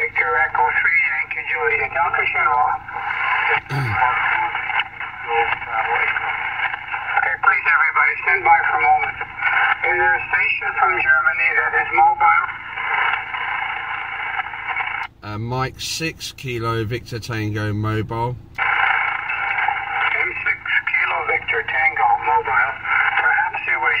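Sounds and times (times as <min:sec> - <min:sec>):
narrow-band radio speech: 0:00.0 - 0:13.3, 0:15.1 - 0:18.7, 0:19.9 - 0:24.0
radio band hiss: 0:00.0 - 0:24.0
low vocal sound: 0:03.6 - 0:04.2.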